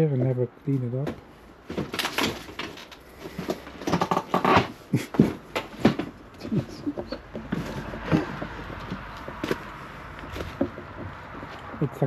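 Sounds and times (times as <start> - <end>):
trash rustling and crackling: 0.8 - 11.8.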